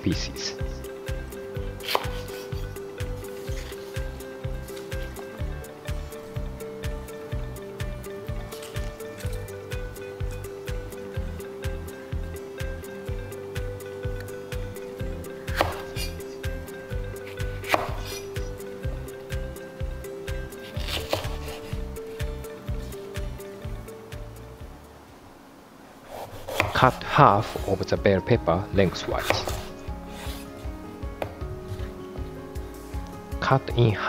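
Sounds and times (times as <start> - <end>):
background music with steady beat: 0.0 - 25.6, 26.4 - 34.0
knife slicing pepper on board: 1.8 - 2.6, 15.5 - 16.2, 17.6 - 18.4, 20.6 - 21.8, 26.1 - 26.9, 29.2 - 30.5.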